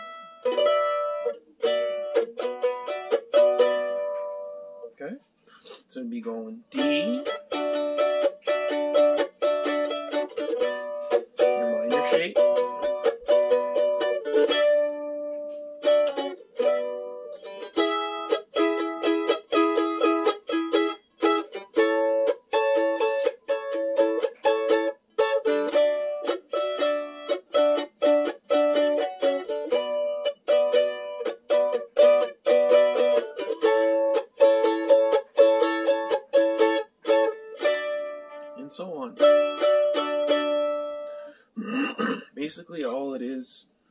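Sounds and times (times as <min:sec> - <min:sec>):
mandolin strumming chords: 0:00.0 - 0:05.0, 0:06.7 - 0:41.4.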